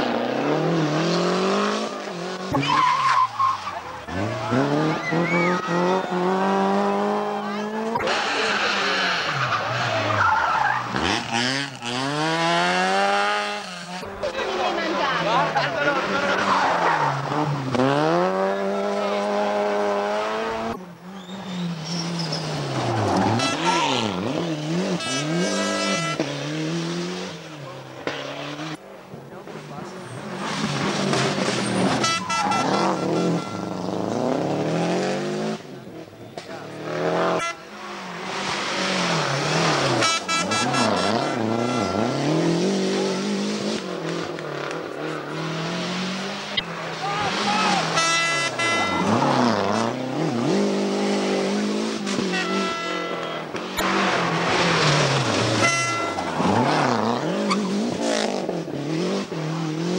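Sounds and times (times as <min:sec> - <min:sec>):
rally car engine revving: 0:00.0 - 0:59.9.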